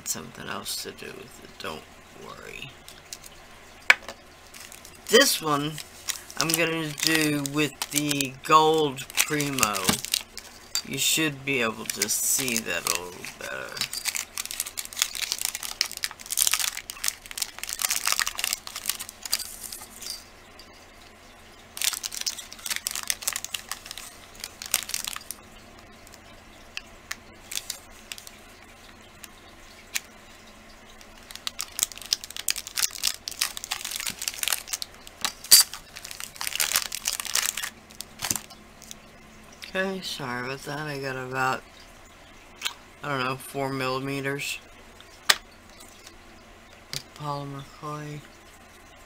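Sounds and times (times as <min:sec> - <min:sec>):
plastic wrapper crinkling and tearing: 0:04.5 - 0:20.2, 0:21.8 - 0:25.4, 0:27.1 - 0:28.5, 0:30.9 - 0:39.0.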